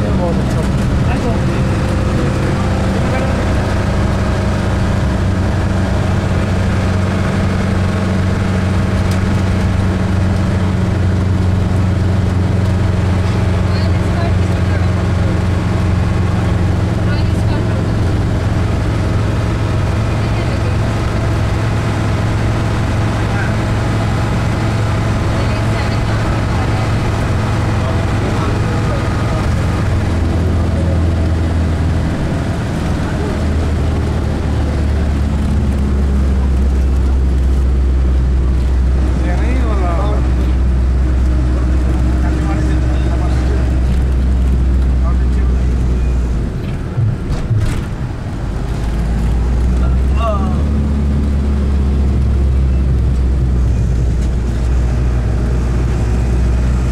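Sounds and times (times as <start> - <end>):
vehicle engine and road noise: 0.0 - 56.9.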